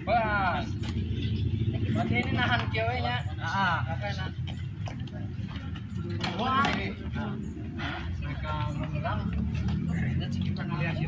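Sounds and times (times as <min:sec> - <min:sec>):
low engine rumble: 0:00.0 - 0:11.0
voices talking: 0:00.0 - 0:11.0.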